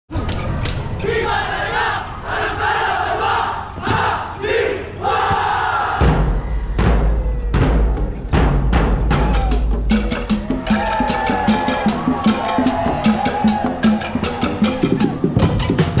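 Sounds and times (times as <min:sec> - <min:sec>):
group of voices chanting: 0:01.0 - 0:06.2
heavy drum beats: 0:05.2 - 0:16.0.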